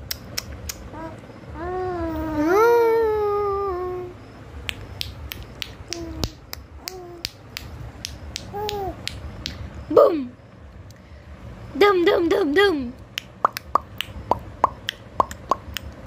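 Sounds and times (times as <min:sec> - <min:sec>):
baby cooing: 0:00.9 - 0:04.2, 0:05.9 - 0:07.3, 0:08.5 - 0:09.0.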